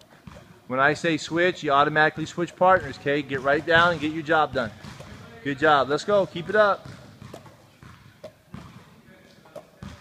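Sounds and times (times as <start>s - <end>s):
medicine balls knocking and slapping: 0.0s - 0.6s, 1.8s - 8.9s, 9.5s - 10.0s.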